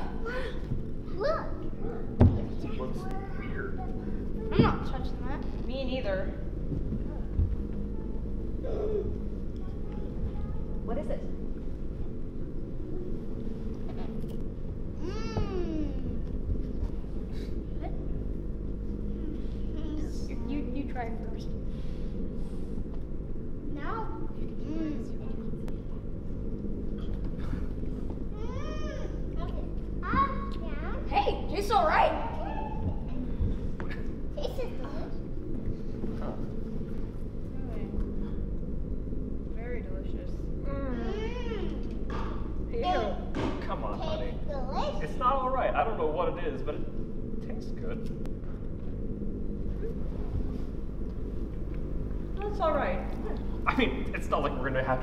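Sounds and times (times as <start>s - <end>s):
low rumbling spaceship drone: 0.0s - 55.0s.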